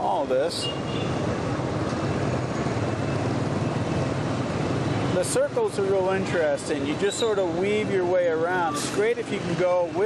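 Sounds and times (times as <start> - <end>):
surrounding traffic: 0.0 - 10.0.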